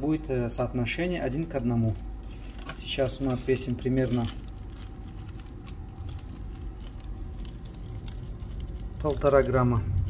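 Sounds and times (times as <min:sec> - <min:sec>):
plastic bag crinkling: 0:01.2 - 0:10.0.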